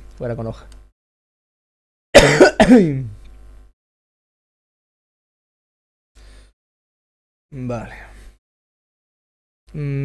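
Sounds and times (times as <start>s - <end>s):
man coughing: 2.2s - 3.1s.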